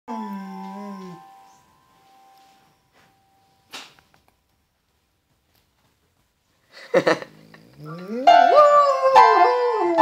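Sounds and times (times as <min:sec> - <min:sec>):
dog howling: 0:00.1 - 0:01.2, 0:07.7 - 0:10.0
piano notes ringing: 0:00.1 - 0:03.7, 0:08.1 - 0:10.0.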